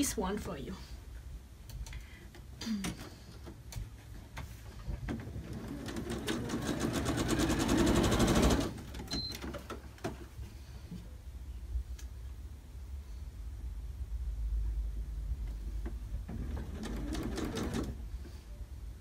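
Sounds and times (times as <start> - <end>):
sewing machine stitching: 5.1 - 9.3, 16.3 - 18.0.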